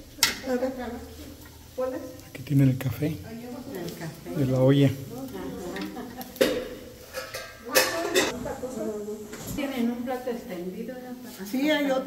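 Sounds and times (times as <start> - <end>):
dishes and utensils clattering: 5.7 - 8.4.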